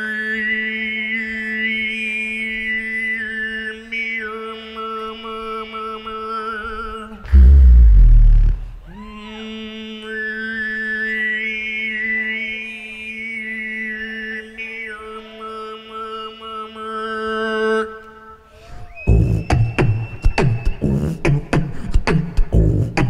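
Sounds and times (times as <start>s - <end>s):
steady vocal drone: 7.0s - 10.2s, 20.8s - 23.0s
higher vocal melody: 7.2s - 9.2s
deep booming bass note: 7.3s - 9.0s
beatboxing into a microphone: 7.3s - 9.1s, 19.0s - 23.0s.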